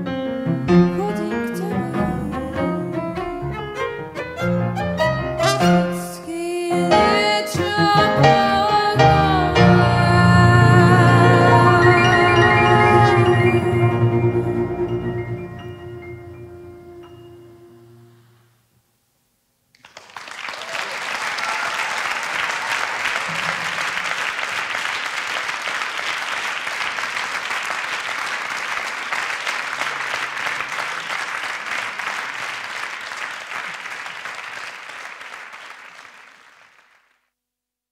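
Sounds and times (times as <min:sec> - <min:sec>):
audience applauding: 0:19.7 - 0:37.2.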